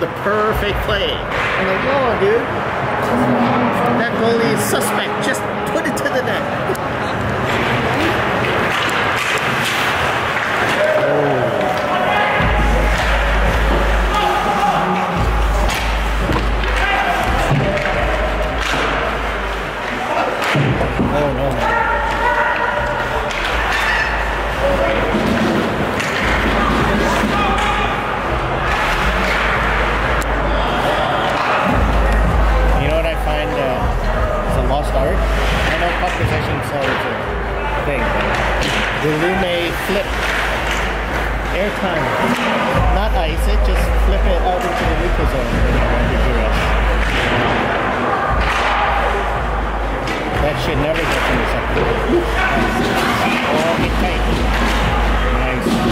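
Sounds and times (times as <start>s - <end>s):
puck and players slamming boards: 1.2s - 2.1s, 7.2s - 32.4s, 35.2s - 37.4s, 38.1s - 39.4s, 40.0s - 42.9s, 44.6s - 55.9s.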